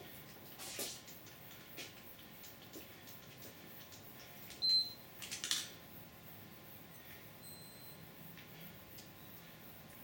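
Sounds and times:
faint clicks and handling noise: 0:00.2 - 0:05.8.

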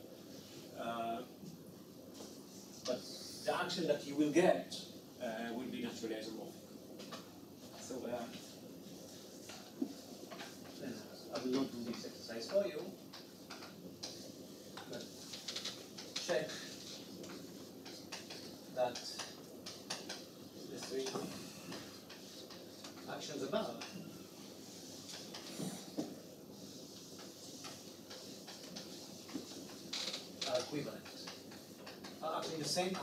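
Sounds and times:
chalk scratching on blackboard: 0:24.5 - 0:29.9.

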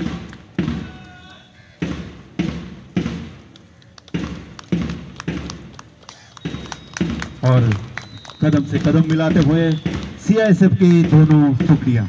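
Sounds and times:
marching footsteps: 0:00.0 - 0:12.0
heavy drum thuds: 0:01.8 - 0:03.4, 0:09.3 - 0:12.0.

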